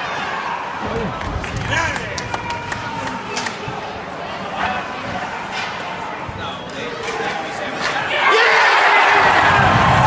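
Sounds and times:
crowd chatter in arena: 0.0s - 10.0s.

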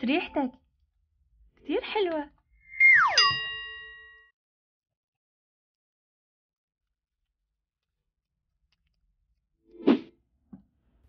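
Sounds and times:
bright bell-like ding: 3.2s - 4.2s.

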